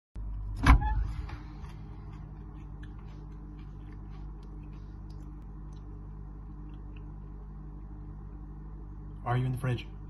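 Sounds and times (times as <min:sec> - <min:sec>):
refrigerator hum: 0:00.2 - 0:10.0
refrigerator door thump: 0:00.6 - 0:01.3.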